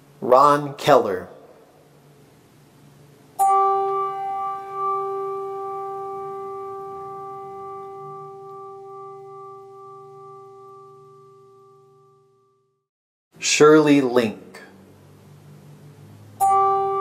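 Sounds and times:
bell ringing: 16.4s - 17.0s.

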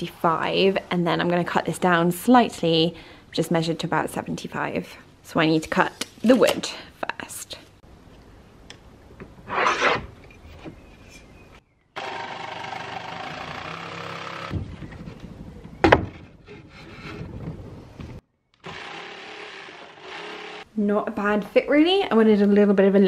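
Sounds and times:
electric saw cutting wood: 12.0s - 14.6s, 18.6s - 20.7s.

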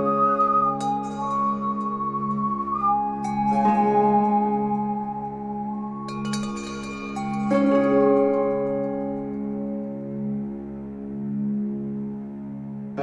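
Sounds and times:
low drone: 0.0s - 13.0s
slow melody of held notes: 0.0s - 13.0s.

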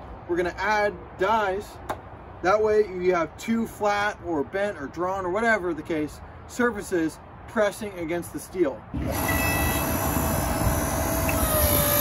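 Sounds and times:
hydraulic press motor whining: 8.9s - 12.0s.

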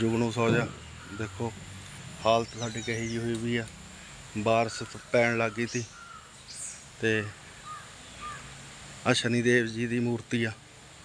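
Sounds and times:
bird calling faintly: 0.0s - 8.7s.

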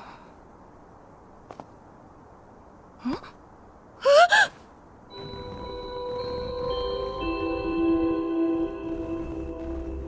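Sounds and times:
held music tones: 5.1s - 10.0s.

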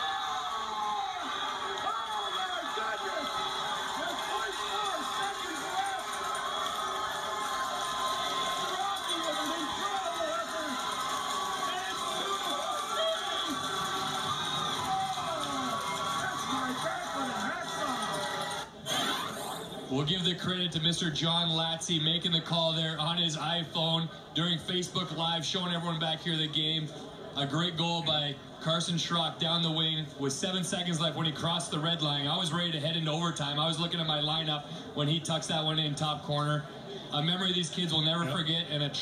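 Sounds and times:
crowd cheering and yelling: 0.0s - 19.6s.

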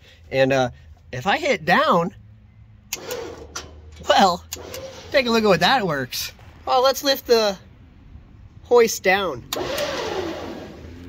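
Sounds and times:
hydraulic pump motor running: 2.9s - 5.5s, 9.5s - 11.0s.

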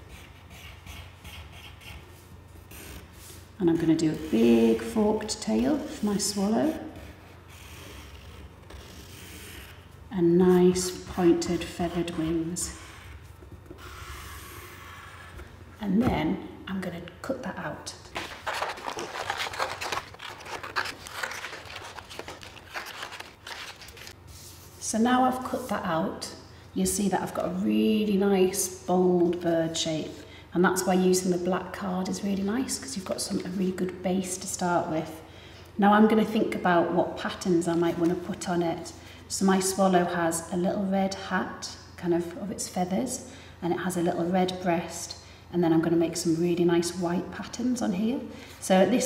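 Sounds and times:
card rustling: 18.1s - 24.2s.

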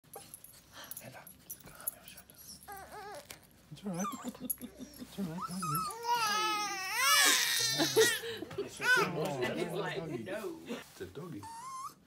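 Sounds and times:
small dog whimpering: 2.4s - 8.2s, 11.4s - 12.0s.

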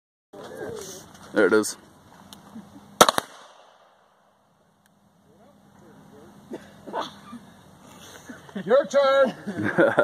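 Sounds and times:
pistol shots: 3.0s - 4.0s.

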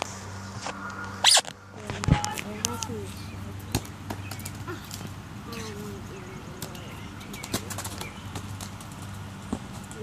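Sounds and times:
low hum: 0.0s - 4.0s
rubber ball bouncing on concrete: 3.7s - 5.2s.

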